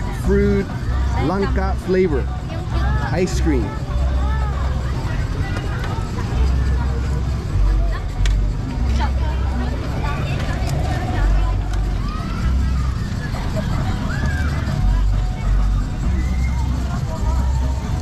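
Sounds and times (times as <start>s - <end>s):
crowd chatter: 0.0s - 18.0s
low rumble: 3.8s - 18.0s.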